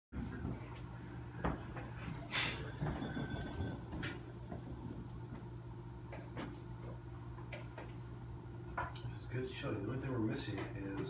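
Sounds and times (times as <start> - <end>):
aquarium equipment humming: 0.2 - 11.0.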